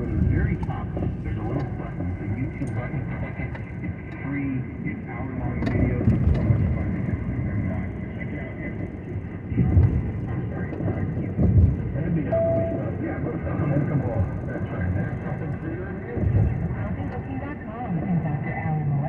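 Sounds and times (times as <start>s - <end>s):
car road and engine rumble: 0.0s - 19.0s
talk radio playing low: 0.0s - 19.0s.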